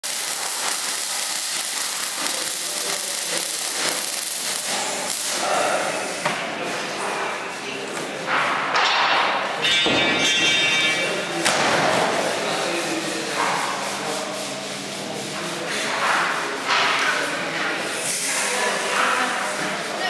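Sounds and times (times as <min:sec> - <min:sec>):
welding arc crackling and hissing: 0:00.0 - 0:06.5.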